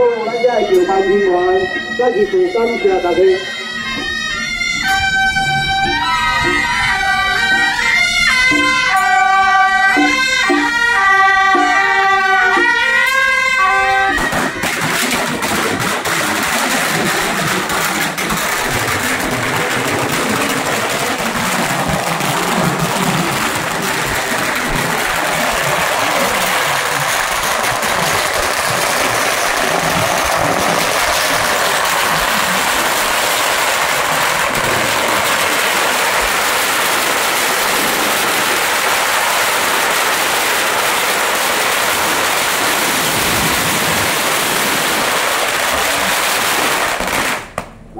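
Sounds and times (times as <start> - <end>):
firecrackers crackling: 0.4 - 47.9.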